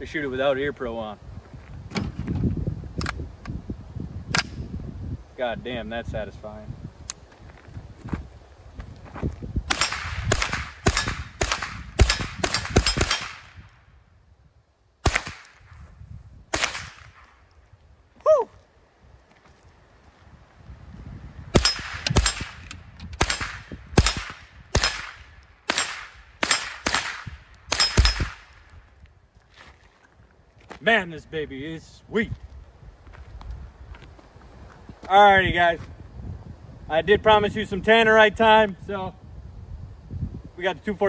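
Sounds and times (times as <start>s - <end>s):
rifle shots: 9.7s - 13.6s, 15.0s - 15.6s, 16.5s - 17.2s, 21.5s - 28.6s.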